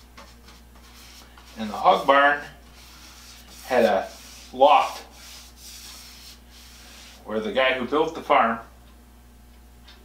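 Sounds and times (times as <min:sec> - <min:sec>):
paintbrush rubbing on wood: 0:00.0 - 0:07.4.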